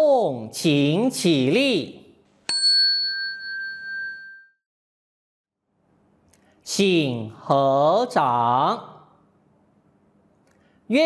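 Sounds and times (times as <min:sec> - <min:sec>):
small bell ringing: 0:02.5 - 0:04.6.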